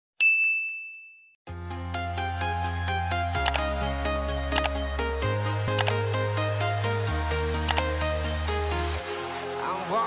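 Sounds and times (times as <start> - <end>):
bright ding: 0.2 - 1.3
background music with low bass: 1.5 - 10.0.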